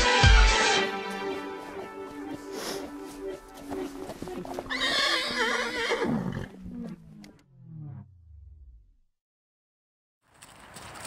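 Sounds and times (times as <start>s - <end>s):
background music: 0.0s - 5.7s
horse whinnying: 3.6s - 7.1s.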